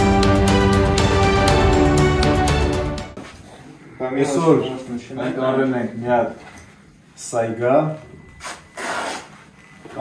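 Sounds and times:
cardboard scraping: 8.4 - 9.6.

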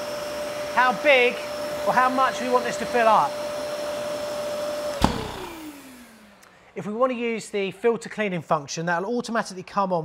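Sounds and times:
vacuum motor running: 0.0 - 6.5.

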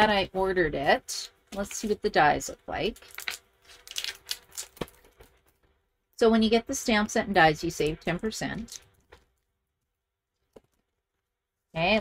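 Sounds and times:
plastic packaging crinkling: 2.9 - 5.7.

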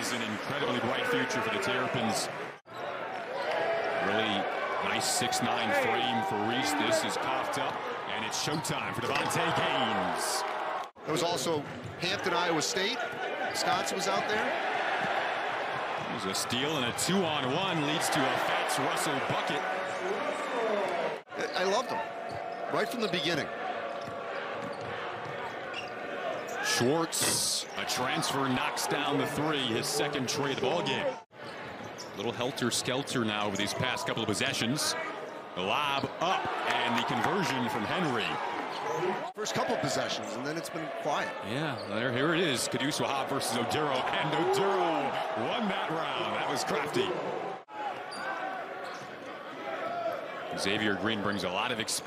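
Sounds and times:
arena crowd noise: 0.0 - 52.0.

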